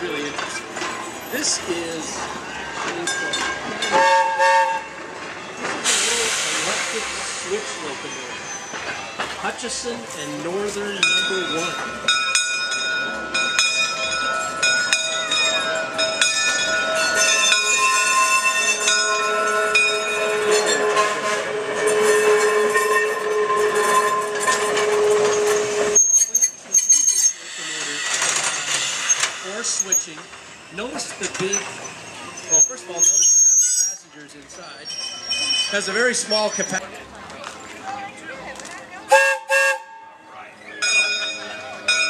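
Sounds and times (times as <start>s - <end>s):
crowd chatter: 0.0s - 42.0s
locomotive high-pitched whine: 15.8s - 33.8s.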